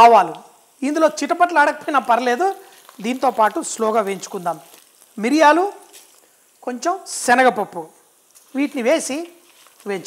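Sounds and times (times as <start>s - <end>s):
spices sizzling in a pan: 0.0s - 10.0s.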